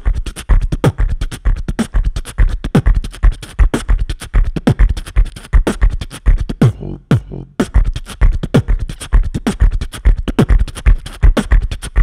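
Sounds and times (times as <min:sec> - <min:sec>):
beatboxing into a microphone: 0:00.0 - 0:12.0.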